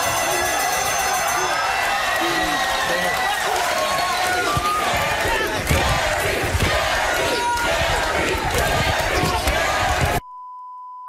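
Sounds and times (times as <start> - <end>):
women screaming: 0.0 - 4.9
audience yelling and shouting: 0.0 - 10.2.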